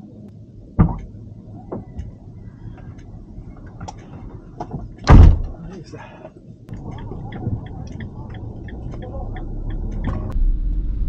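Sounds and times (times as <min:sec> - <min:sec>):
van door slamming shut: 0:04.7 - 0:05.6.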